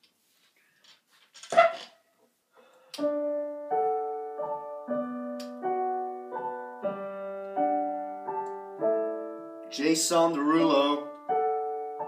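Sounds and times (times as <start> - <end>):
piano notes: 3.0 - 12.0
click: 5.4 - 5.6.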